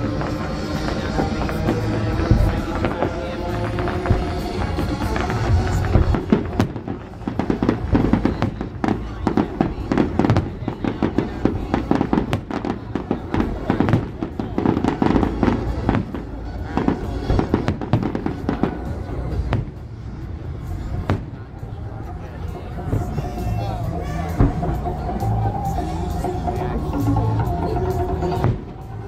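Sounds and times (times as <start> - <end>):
fireworks bangs and crackles: 0.0 - 29.0.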